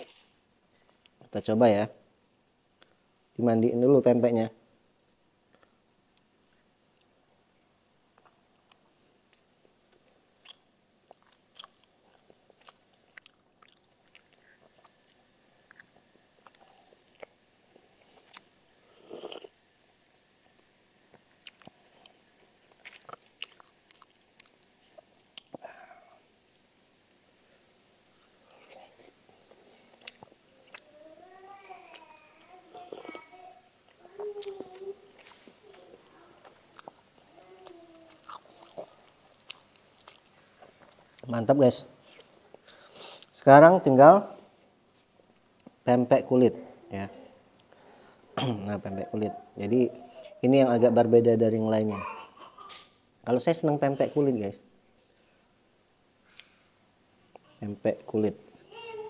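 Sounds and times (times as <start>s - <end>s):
person chewing: 8.2s - 20.2s, 21.1s - 26.7s, 28.4s - 30.9s, 32.9s - 33.2s, 34.4s - 41.3s, 42.0s - 43.4s
mouth clicks and smacks: 21.1s - 25.8s.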